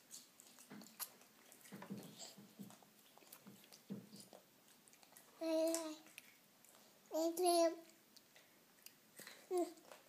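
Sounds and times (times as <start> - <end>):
baby chewing and sucking fingers: 0.0 - 10.0.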